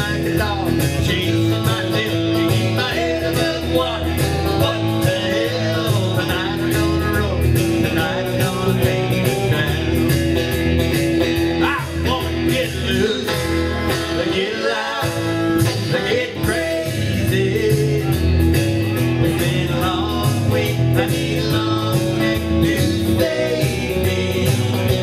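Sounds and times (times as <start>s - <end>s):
person singing: 0.0s - 10.1s, 11.5s - 25.0s
guitar playing: 0.0s - 25.0s.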